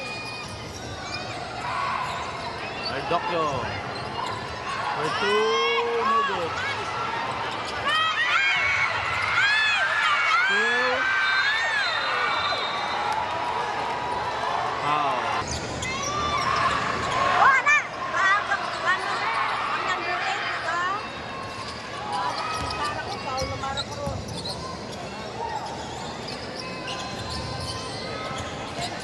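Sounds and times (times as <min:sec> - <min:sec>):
sneakers squeaking on court: 0:00.0 - 0:09.4, 0:21.0 - 0:29.0
crowd chatter: 0:00.0 - 0:29.0.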